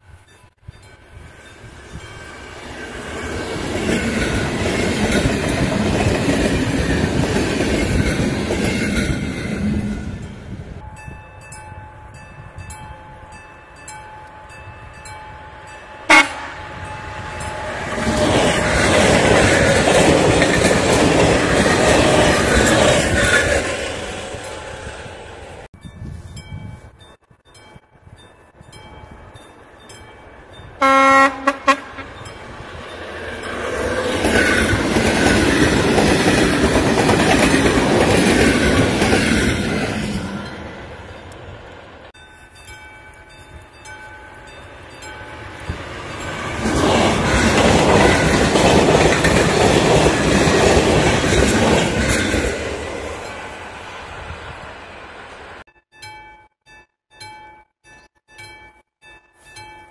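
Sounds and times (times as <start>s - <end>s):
wheel and rail noise: 0.0s - 55.6s
electric trains passing: 0.0s - 56.3s
level crossing warning bell: 9.8s - 19.2s, 25.7s - 39.2s, 42.1s - 50.0s, 55.6s - 59.9s.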